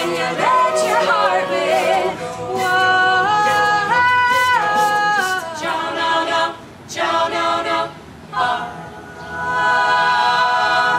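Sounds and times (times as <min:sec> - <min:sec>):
a cappella group singing: 0:00.0 - 0:10.9.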